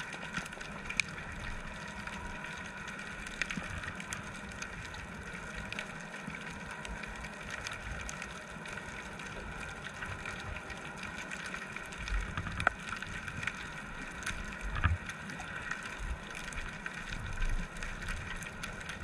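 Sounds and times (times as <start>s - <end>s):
faint underwater clicks: 0.0s - 19.0s
underwater hiss and rumble: 0.0s - 19.0s.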